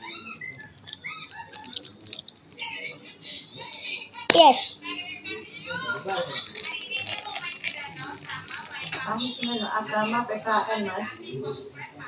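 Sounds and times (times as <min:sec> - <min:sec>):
plastic candy wrapper crinkling: 0:00.5 - 0:02.8, 0:06.0 - 0:09.7.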